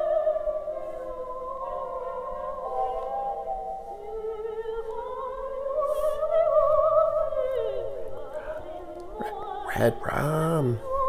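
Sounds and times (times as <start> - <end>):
eerie theremin-like music: 0.0 - 9.3.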